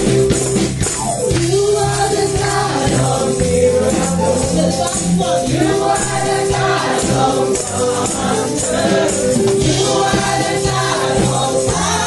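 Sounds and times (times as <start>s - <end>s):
instrumental accompaniment with bass: 0.0s - 12.0s
women singing worship song: 1.3s - 12.0s.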